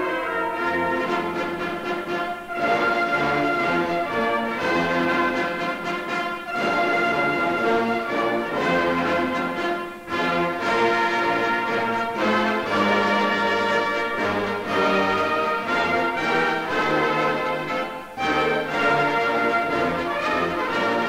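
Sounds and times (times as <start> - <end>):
orchestra with brass playing anthem: 0.0 - 21.0.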